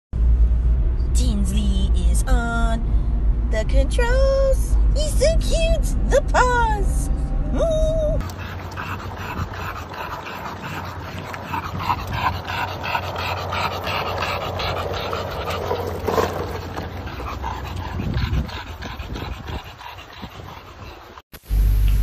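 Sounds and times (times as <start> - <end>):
pet panting rapidly: 8.2 - 21.2.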